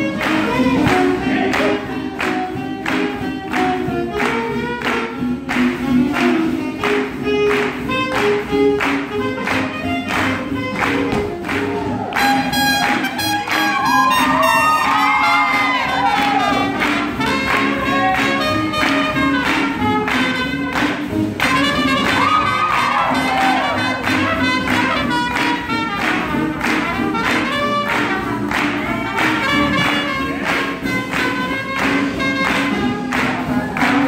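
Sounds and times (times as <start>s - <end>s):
swing jazz band playing: 0.0s - 34.0s.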